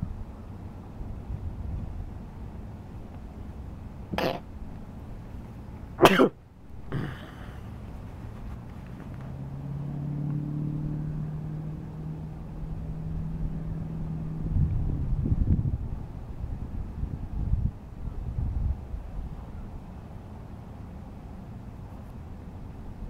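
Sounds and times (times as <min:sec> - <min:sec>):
distant engine humming: 0:00.0 - 0:16.9.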